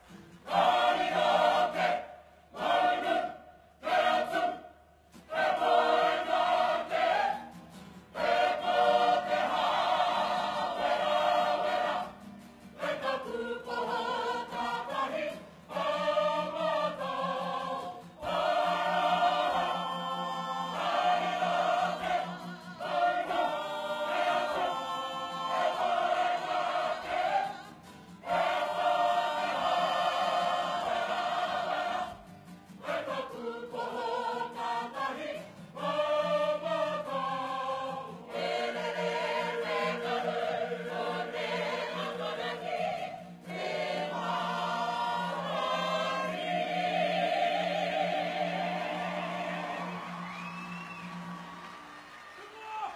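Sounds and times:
men and women choir singing: 0.4 - 51.5.

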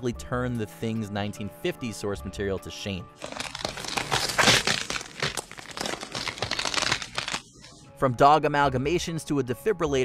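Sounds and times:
irregular crackling: 3.2 - 7.8.

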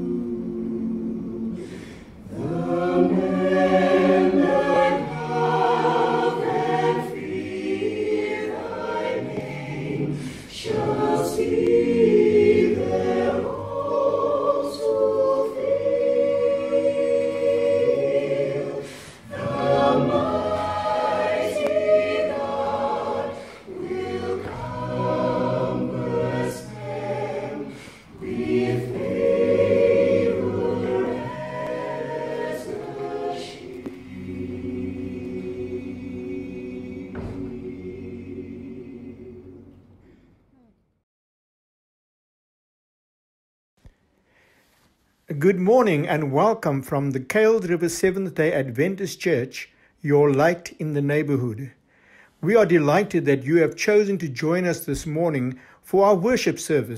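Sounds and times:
mixed choir singing unaccompanied: 0.0 - 40.2.

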